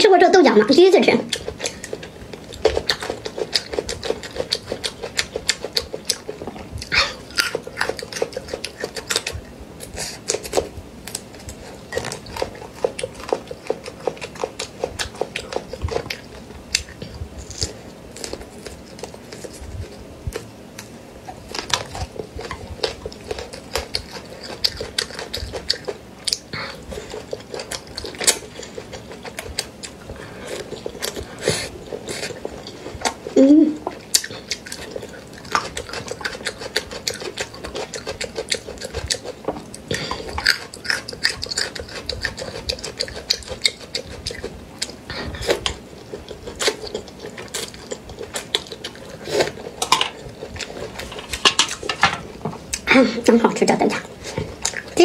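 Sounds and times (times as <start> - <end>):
chewing and crunching: 0.2 - 55.0
wet mouth sounds: 1.3 - 52.0.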